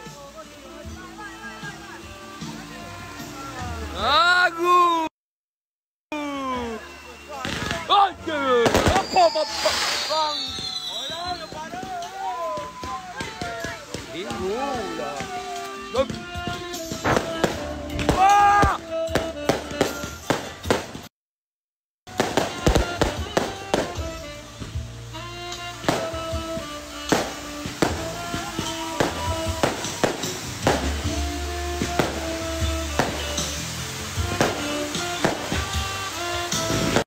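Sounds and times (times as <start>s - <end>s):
fireworks crackling and popping: 0.0s - 5.0s, 6.5s - 21.1s, 22.1s - 37.0s
melodic music: 0.0s - 5.1s, 6.1s - 21.0s, 22.1s - 37.0s.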